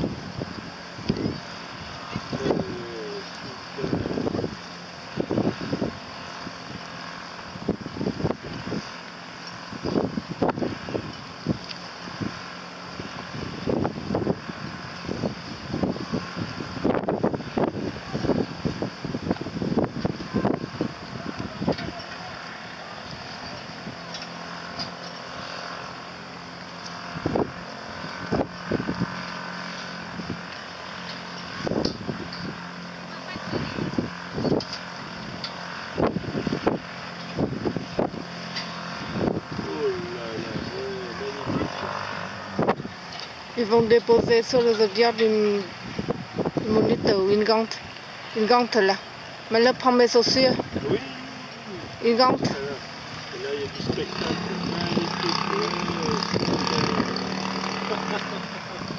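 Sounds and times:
wind buffeting microphone: 0:00.0 - 0:09.0, 0:09.6 - 0:24.1, 0:27.1 - 0:51.0, 0:51.7 - 0:57.9
outboard motor hum: 0:00.0 - 0:58.9.

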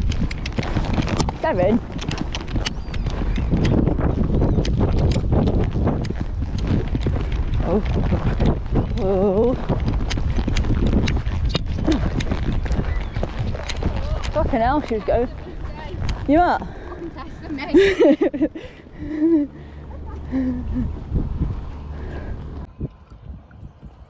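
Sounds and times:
horse hoofbeats on sand: 0:00.0 - 0:18.5
wind noise on microphone: 0:00.0 - 0:24.0.

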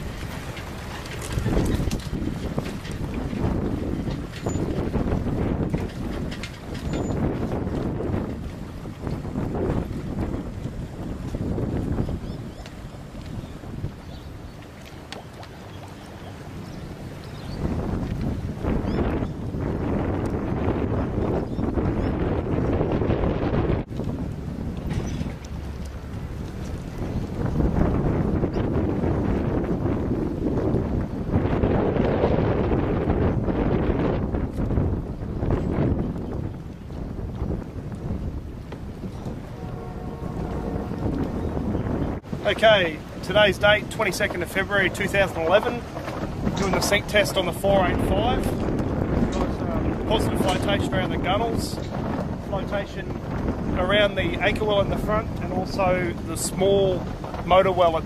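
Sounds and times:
wind blowing across microphone: 0:00.0 - 0:58.0.

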